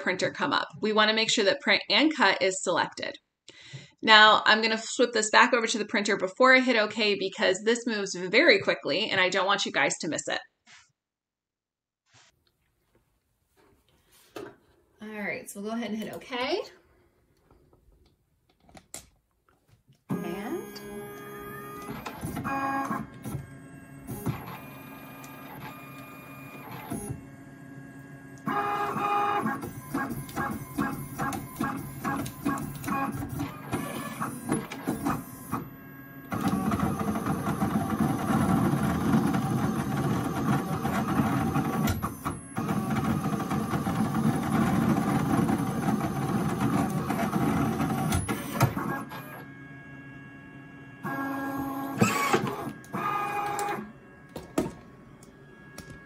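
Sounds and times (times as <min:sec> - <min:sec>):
printer running mechanically: 0:20.1 - 0:55.8
printer motor whine: 0:20.1 - 0:56.0.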